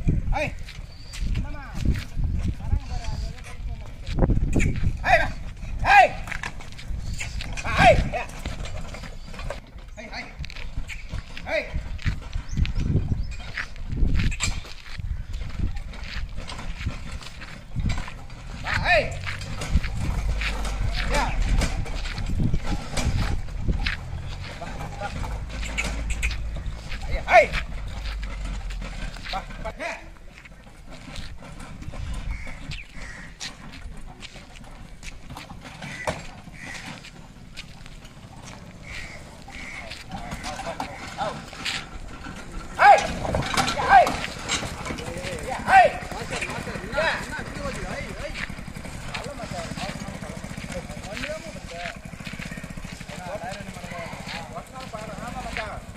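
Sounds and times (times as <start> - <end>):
cart knocking and rattling: 0.0 - 55.9
man calling to animals: 0.1 - 8.6, 9.9 - 10.5, 11.3 - 12.0, 18.5 - 19.4, 20.3 - 22.0, 24.5 - 30.4, 38.9 - 41.7, 42.6 - 55.9
hoof steps on dirt: 0.5 - 55.9
faint voices: 15.2 - 55.9.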